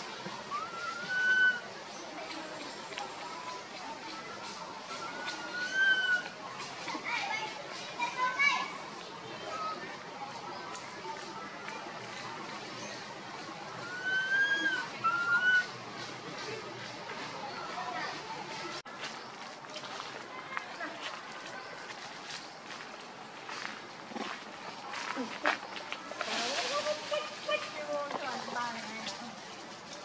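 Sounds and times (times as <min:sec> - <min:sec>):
faint indistinct voices: 0:00.0 - 0:30.0
leaves rustling: 0:10.0 - 0:30.0
young macaque crying: 0:13.8 - 0:15.7.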